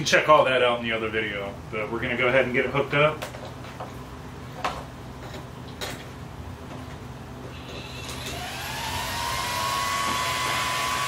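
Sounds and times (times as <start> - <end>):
cooling fan whining: 0.0 - 11.0.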